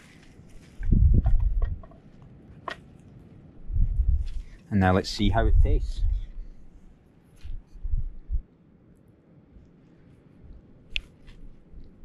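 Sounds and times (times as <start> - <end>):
low rumble: 0.5 - 1.9, 3.5 - 8.4.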